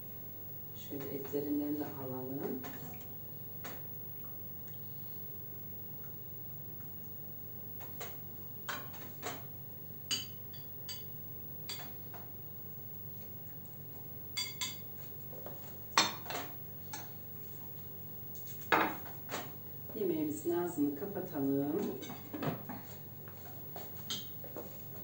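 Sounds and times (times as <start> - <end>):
metal spoon clinking on pan and plate: 10.1 - 11.1
plate set down on countertop: 18.7 - 19.0.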